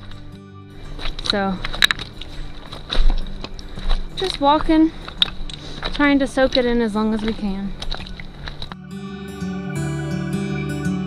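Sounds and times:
boots stepping on rocky trail: 0:00.0 - 0:08.8
trekking poles tapping: 0:01.0 - 0:08.8.

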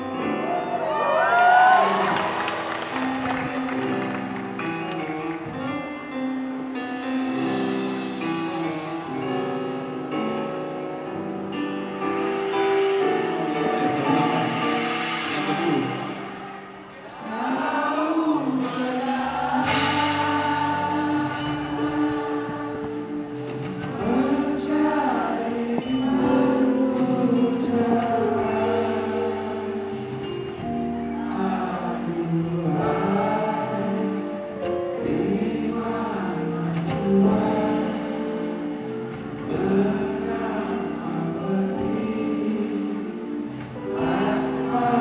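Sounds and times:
live band music: 0:00.0 - 0:45.0
audience whistling and cheering: 0:00.3 - 0:04.7.

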